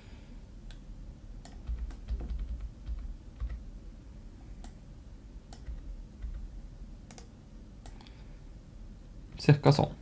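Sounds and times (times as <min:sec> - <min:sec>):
computer keyboard tapping: 0:01.4 - 0:03.6, 0:05.5 - 0:06.5, 0:07.1 - 0:07.3.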